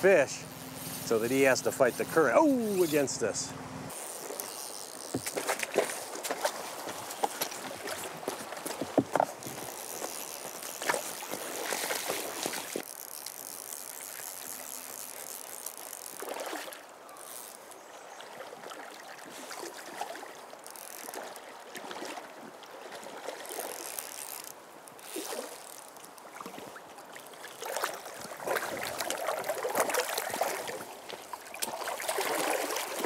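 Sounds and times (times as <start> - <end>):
river water rushing: 18.2 - 33.0.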